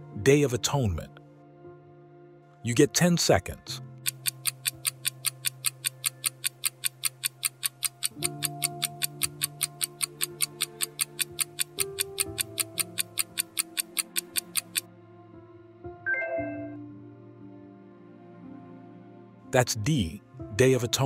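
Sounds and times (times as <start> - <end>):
soft background music: 0.0 - 21.0
fast clock-like ticking: 4.0 - 14.9.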